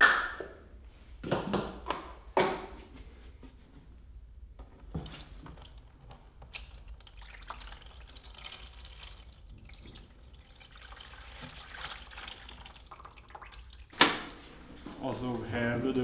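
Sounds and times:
liquid pouring into metal tray: 0:04.9 - 0:14.0.

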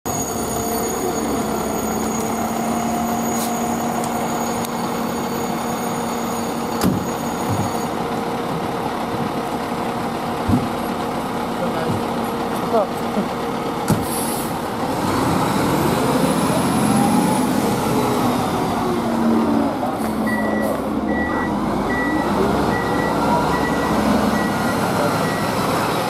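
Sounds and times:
diesel engine running: 0:00.1 - 0:26.0
sharp knocks: 0:10.4 - 0:10.8.

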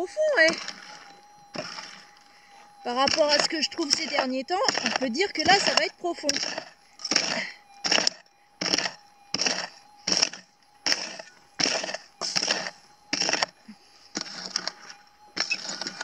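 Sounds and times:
pick striking stony soil: 0:02.9 - 0:13.5.

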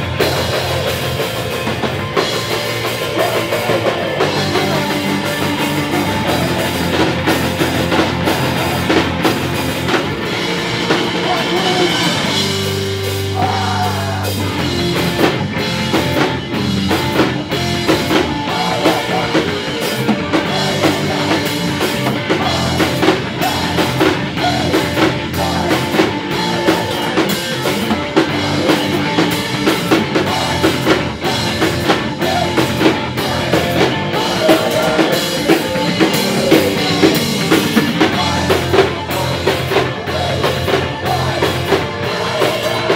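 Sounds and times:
bass guitar: 0:00.0 - 0:42.9
drum kit beat: 0:00.0 - 0:42.9
electric guitar: 0:00.0 - 0:42.9
rock band playing live: 0:00.0 - 0:42.9.

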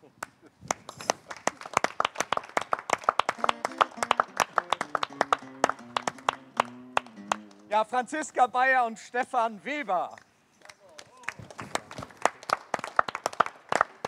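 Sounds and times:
audience applauding: 0:00.8 - 0:07.7, 0:11.2 - 0:14.0.

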